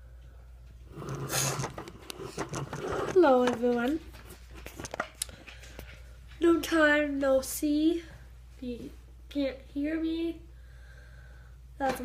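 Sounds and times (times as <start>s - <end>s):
rustling and handling noise: 0.6s - 7.9s
scattered clicks and scrapes: 0.9s - 6.0s.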